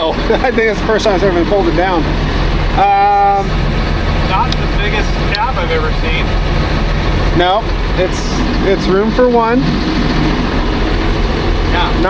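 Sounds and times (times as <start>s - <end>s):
diesel engine idling: 0.0s - 12.0s
heater fan hissing: 0.0s - 12.0s.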